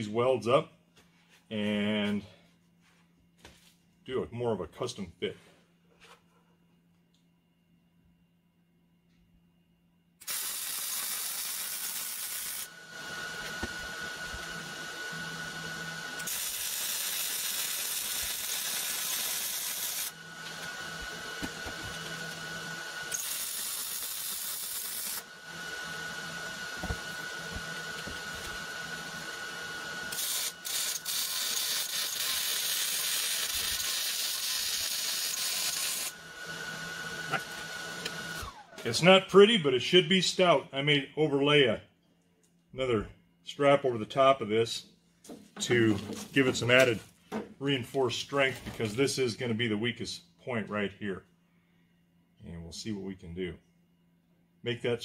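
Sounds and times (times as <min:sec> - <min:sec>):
welder arc hissing: 0:10.2 - 0:14.9, 0:16.1 - 0:25.3, 0:30.0 - 0:36.2.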